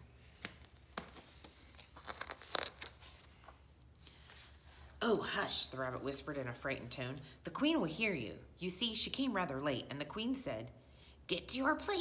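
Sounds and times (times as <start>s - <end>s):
book pages turning: 0.3s - 4.6s.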